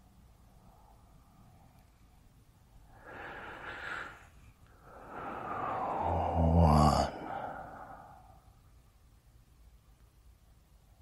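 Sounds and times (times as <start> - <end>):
sigh-like breath out: 2.9 - 8.5.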